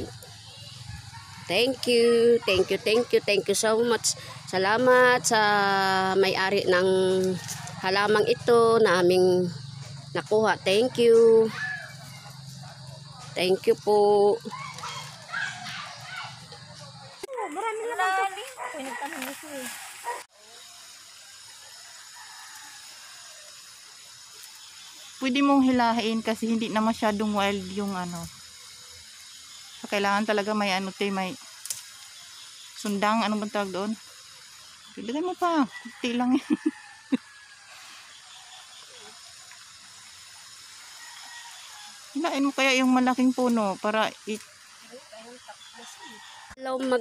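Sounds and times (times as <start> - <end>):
voices talking: 0.0 - 20.3, 25.2 - 28.4, 29.8 - 31.4, 32.8 - 34.1, 34.9 - 36.8, 42.1 - 47.0
creek water running: 0.0 - 47.0
outdoor background hiss: 0.0 - 47.0.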